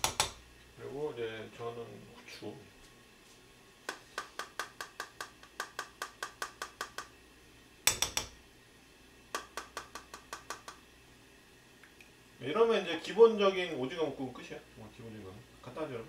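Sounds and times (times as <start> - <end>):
seasoning shaker clicking: 3.9 - 7.2, 9.3 - 10.8.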